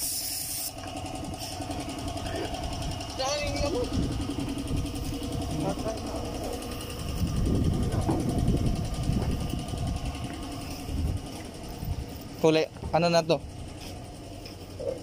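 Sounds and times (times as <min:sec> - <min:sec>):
motor running with low rumble: 0:00.0 - 0:15.0.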